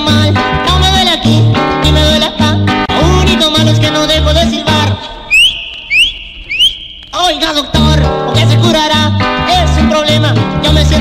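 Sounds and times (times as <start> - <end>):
cumbia music: 0.0 - 11.0
rising whistles: 5.3 - 7.2.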